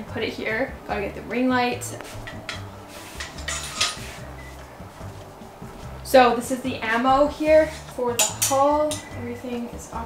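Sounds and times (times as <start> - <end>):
metal clothing rack rattling: 2.2 - 4.1.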